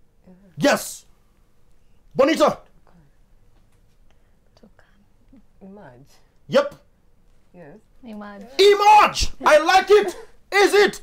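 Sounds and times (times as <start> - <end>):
person speaking: 8.1 - 11.0.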